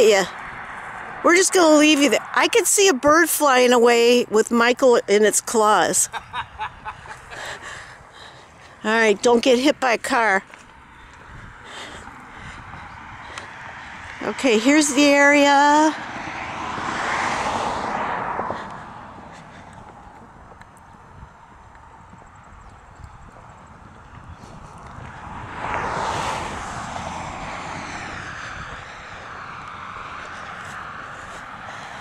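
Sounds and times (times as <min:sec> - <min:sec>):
vehicles passing: 0:00.0 - 0:32.0.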